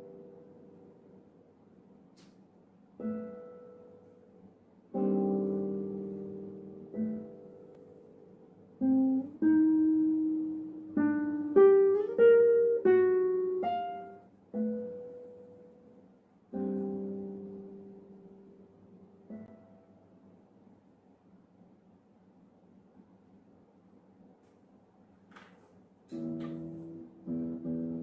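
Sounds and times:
classical guitar plucked notes: 3.0s - 4.3s, 4.9s - 15.9s, 16.5s - 19.8s, 26.1s - 28.0s.

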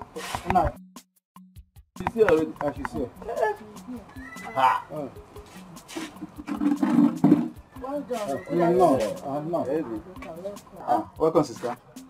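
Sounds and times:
people's wordless exclamations: 3.2s - 5.2s, 7.8s - 9.2s.

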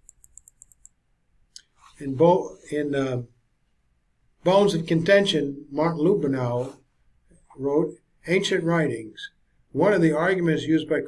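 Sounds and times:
mouse scroll wheel clicking: 0.0s - 0.9s.

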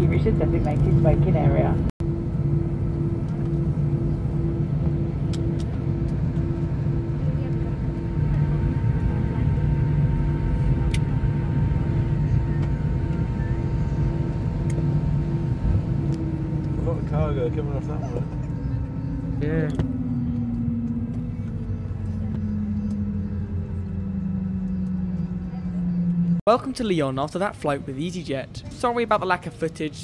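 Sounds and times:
pulsing hum: 0.0s - 26.4s
idling jet engines rumble: 0.0s - 30.0s.

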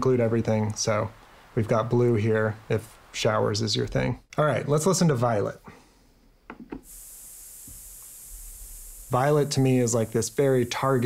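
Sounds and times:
high-pitched violet noise hiss: 0.0s - 11.0s
faint taps: 6.5s - 6.9s.

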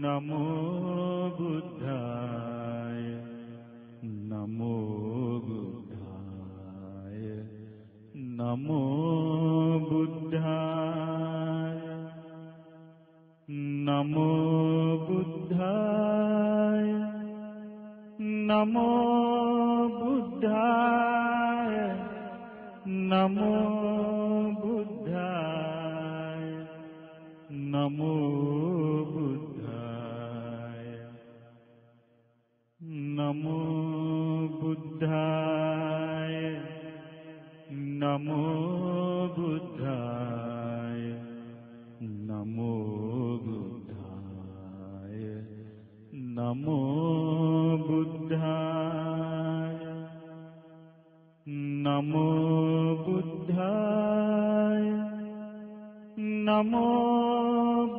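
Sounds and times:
person chanting melodically: 0.0s - 12.3s, 13.5s - 31.3s, 32.8s - 50.5s, 51.4s - 57.9s.

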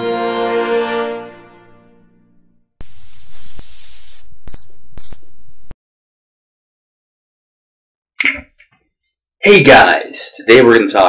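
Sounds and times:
held brass chord: 0.0s - 2.6s
television static hissing and crackling: 2.8s - 5.7s.

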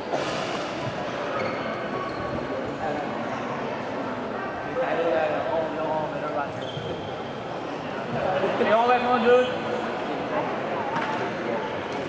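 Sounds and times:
background hubbub: 0.0s - 12.0s
people calling out and chattering: 0.0s - 12.0s.

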